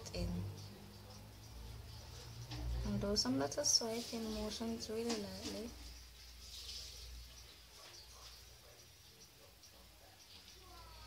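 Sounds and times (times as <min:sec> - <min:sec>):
soft hiss: 0:00.1 - 0:11.0.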